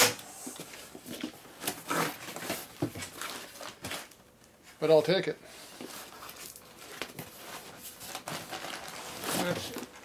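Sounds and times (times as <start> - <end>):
cardboard boxes and paper rustling: 0.6 - 4.2, 5.5 - 10.0.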